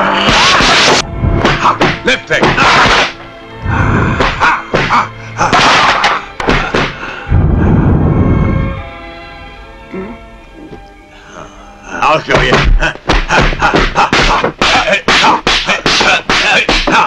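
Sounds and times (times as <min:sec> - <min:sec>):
film music: 0:00.0 - 0:17.0
thudding hit sound effects: 0:00.2 - 0:03.2, 0:04.2 - 0:07.0
deep rumble: 0:01.0 - 0:01.5, 0:03.6 - 0:04.2, 0:07.3 - 0:09.0.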